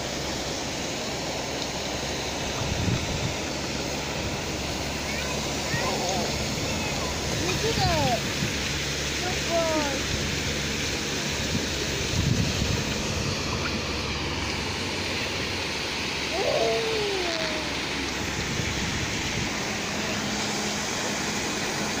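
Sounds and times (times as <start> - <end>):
water rushing from sprays: 0.0 - 22.0
faint children shouting: 5.0 - 7.2, 16.3 - 17.9.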